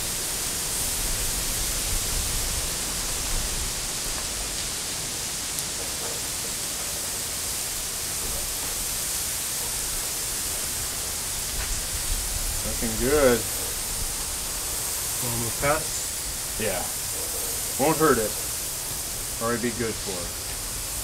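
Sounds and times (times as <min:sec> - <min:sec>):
hose spraying water on gravel: 0:00.0 - 0:21.0.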